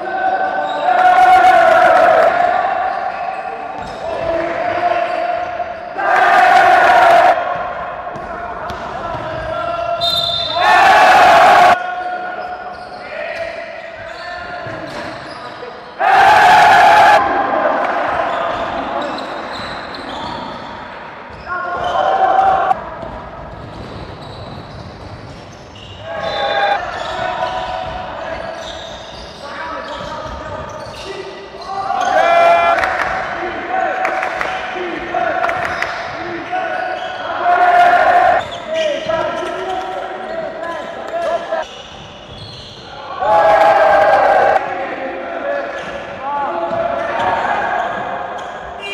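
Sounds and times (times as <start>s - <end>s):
sneakers squeaking: 2.0s - 11.1s, 11.7s - 16.0s, 18.0s - 33.3s, 35.0s - 43.3s, 45.6s - 48.9s
basketball bouncing: 8.1s - 9.5s, 22.8s - 25.7s
players calling out: 25.8s - 48.9s.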